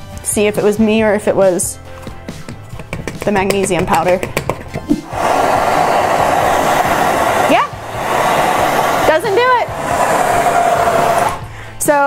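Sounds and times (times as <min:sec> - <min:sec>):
torch flame roaring: 0:05.0 - 0:11.6
rushes of air: 0:05.0 - 0:11.8.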